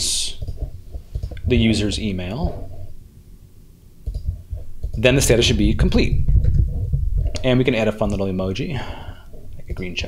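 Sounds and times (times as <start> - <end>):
computer mouse clicks: 4.0 - 5.0.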